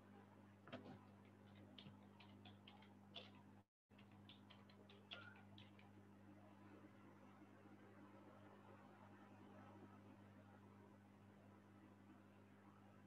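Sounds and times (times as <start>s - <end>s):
low electrical hum: 0.0s - 13.0s
typing on computer keyboard: 0.7s - 6.0s.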